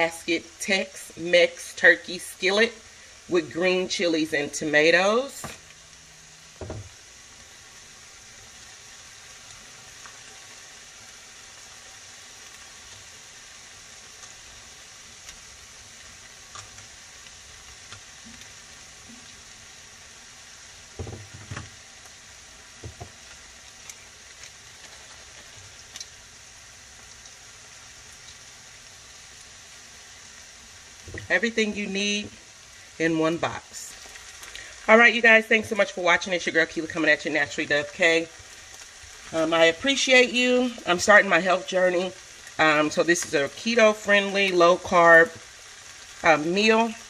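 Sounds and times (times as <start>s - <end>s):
food sizzling in a frying pan: 0.0s - 47.0s
soft knocks: 6.6s - 6.9s, 21.0s - 21.7s, 22.8s - 23.1s.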